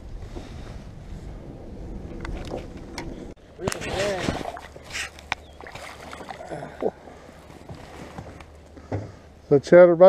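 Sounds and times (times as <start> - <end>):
water splashing: 2.1 - 8.9.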